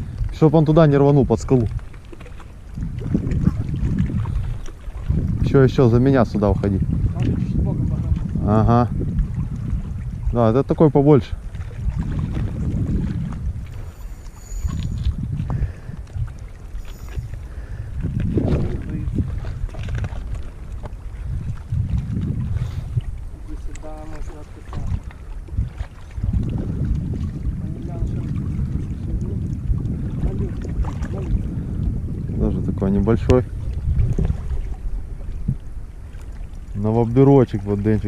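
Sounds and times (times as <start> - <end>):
wind buffeting microphone: 0.0 - 38.0.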